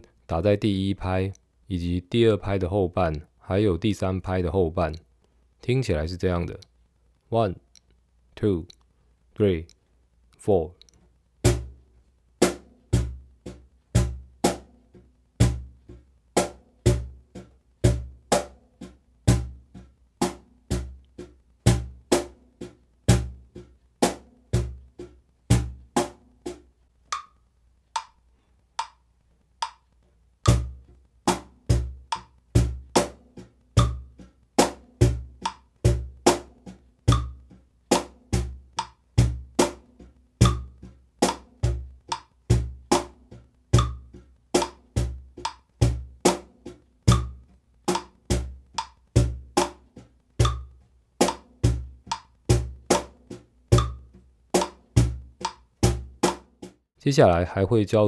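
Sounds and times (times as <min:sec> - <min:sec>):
cajon played with bare hands: 0:30.5 - 0:56.7.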